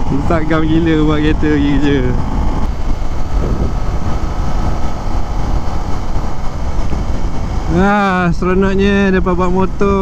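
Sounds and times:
motorcycle engine running: 0:00.0 - 0:10.0
wind rushing over microphone: 0:00.0 - 0:10.0.

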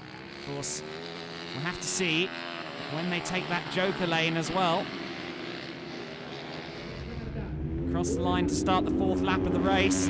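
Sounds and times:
motorcycle engine drone: 0:00.0 - 0:10.0.

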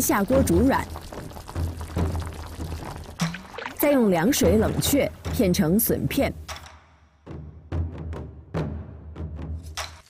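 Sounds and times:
water boiling in a pot: 0:00.0 - 0:06.3
background music: 0:00.0 - 0:10.0.

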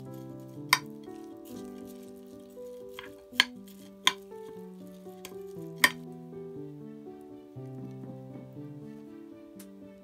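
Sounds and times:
spoon stirring rice: 0:00.0 - 0:06.0
background music: 0:00.0 - 0:10.0.

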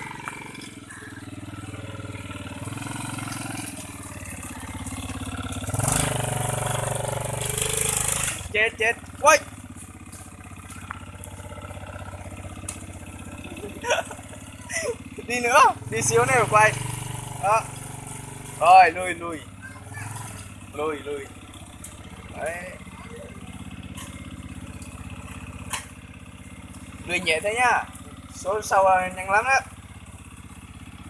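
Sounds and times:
small engine running at low revs: 0:00.0 - 0:31.0.

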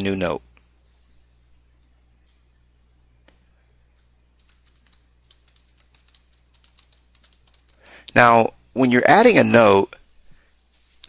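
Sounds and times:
keyboard keys clicking: 0:04.0 - 0:08.1.

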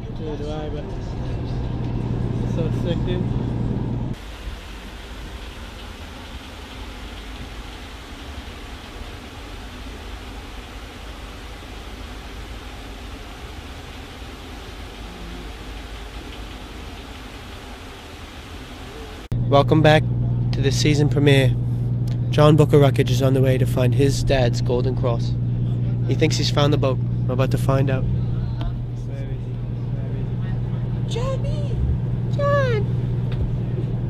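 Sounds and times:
ferry running noise inside cabin: 0:00.0 - 0:34.0.

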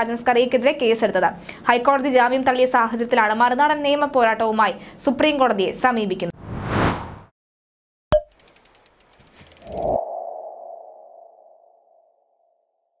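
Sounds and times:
whoosh into low hit: 0:06.4 - 0:07.3
quick ticks: 0:08.2 - 0:10.0.

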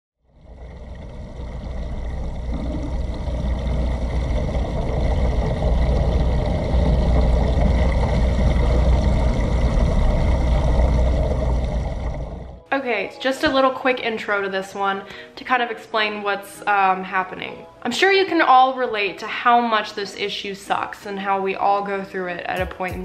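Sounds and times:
rushing water with low rumble: 0:00.4 - 0:12.6.

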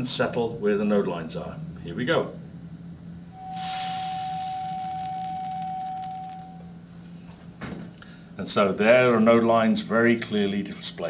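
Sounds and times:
shaker steady single tone: 0:03.3 - 0:06.8
salt grains bouncing on metal: 0:03.4 - 0:06.5.

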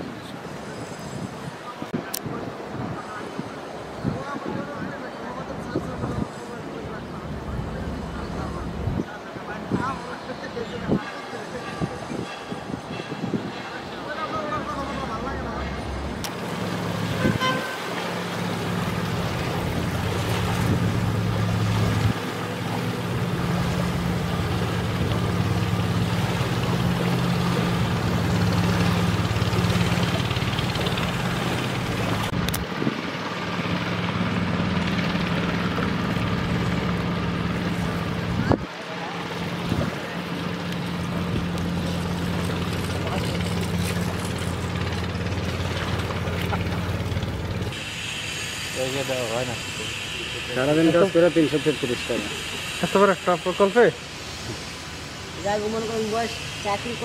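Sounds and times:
low engine drone: 0:06.5 - 0:09.5, 0:14.9 - 0:57.0.

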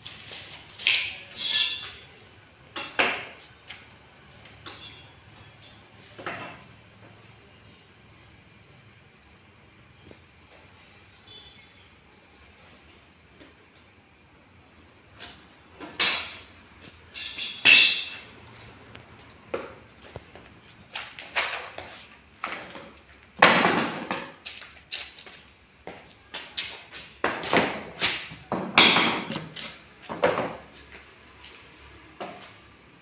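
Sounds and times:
wooden boards knocking on concrete: 0:23.4 - 0:24.4, 0:27.2 - 0:30.6.

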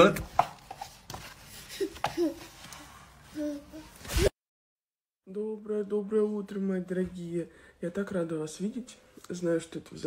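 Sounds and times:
baby babbling: 0:03.3 - 0:03.9.

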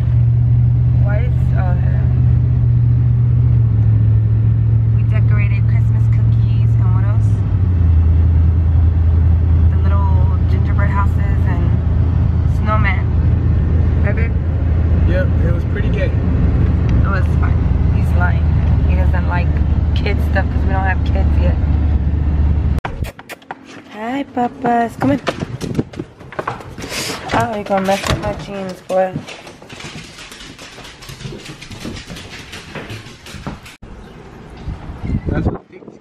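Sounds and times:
car engine and road noise: 0:00.0 - 0:36.0.

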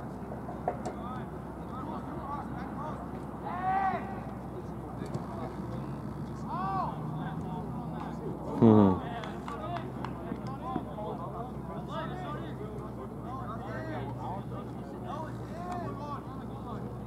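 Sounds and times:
distant players shouting: 0:03.4 - 0:04.4.

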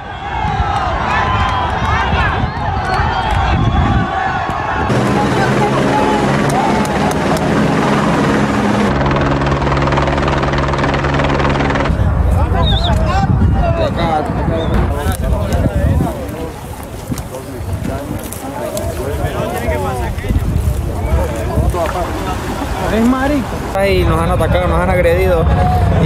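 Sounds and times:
crowd shouting: 0:00.0 - 0:08.9
voices: 0:00.6 - 0:26.0
helicopter rotor drone: 0:04.9 - 0:12.6.

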